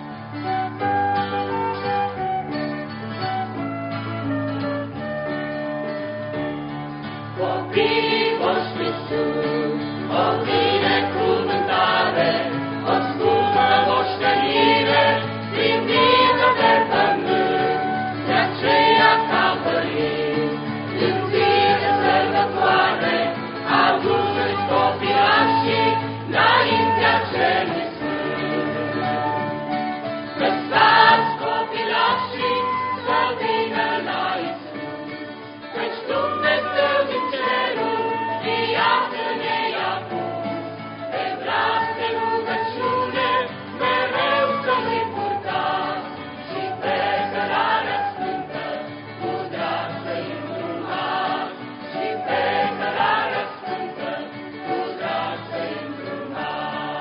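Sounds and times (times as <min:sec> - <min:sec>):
strummed acoustic guitar: 0:00.0 - 0:57.0
mixed choir singing a hymn: 0:07.3 - 0:57.0.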